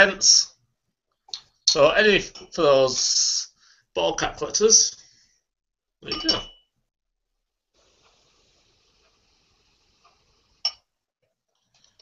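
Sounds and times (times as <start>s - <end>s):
glass clink: 6.0s - 6.7s, 10.6s - 10.8s
liquid pouring hiss: 7.8s - 10.6s.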